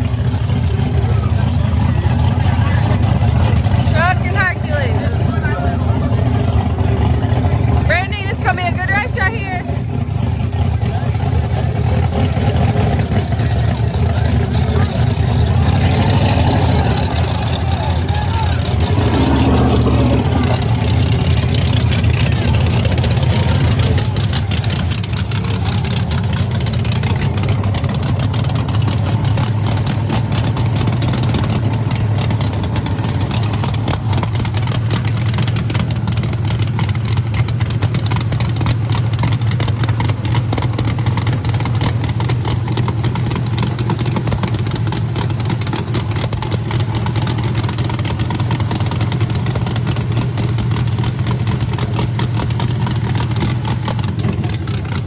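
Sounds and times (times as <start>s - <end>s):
loud race car engine idling: 0.0s - 55.0s.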